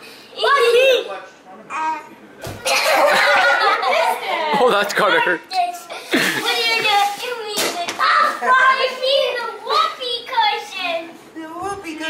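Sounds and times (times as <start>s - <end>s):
children laughing: 2.6s - 9.5s.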